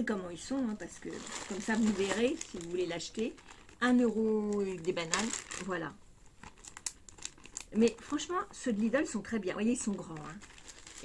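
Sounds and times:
plastic bag crinkling: 0:00.4 - 0:11.0.

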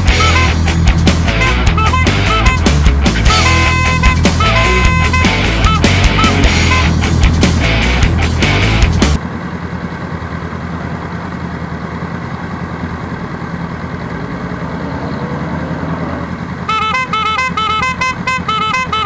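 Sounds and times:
music with bright repeating notes: 0:00.0 - 0:09.2
motorcycle engines idling: 0:00.0 - 0:15.2, 0:16.2 - 0:19.0.

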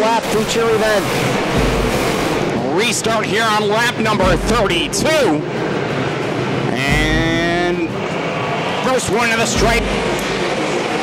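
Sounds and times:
race car engines roaring: 0:00.0 - 0:11.0.

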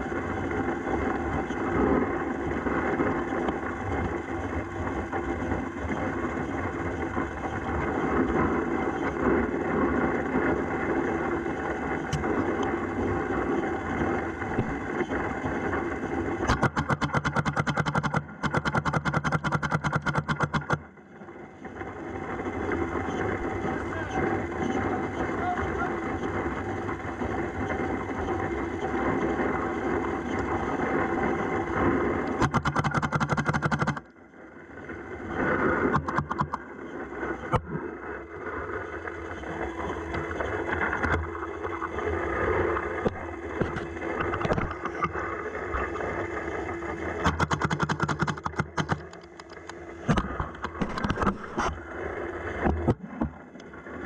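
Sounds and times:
hopper motor whirring: 0:00.0 - 0:54.0.

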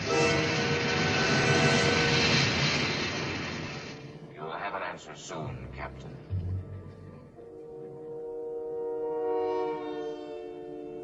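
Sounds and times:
loud rushing hiss with tones: 0:00.0 - 0:05.4.

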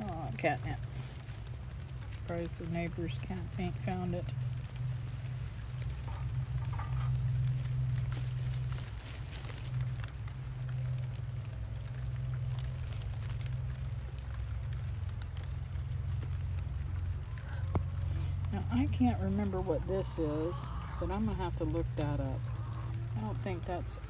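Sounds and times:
light crackling: 0:00.0 - 0:24.0
steady low rumble: 0:00.0 - 0:24.0.

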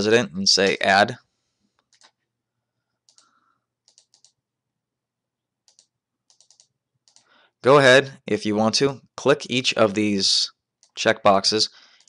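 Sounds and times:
computer mouse clicks: 0:01.7 - 0:02.2, 0:03.1 - 0:04.4, 0:05.6 - 0:07.3.

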